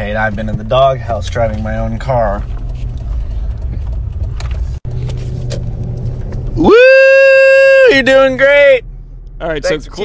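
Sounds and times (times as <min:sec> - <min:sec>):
car cabin rumble: 0:00.0 - 0:10.0
person shouting woo: 0:06.6 - 0:08.0.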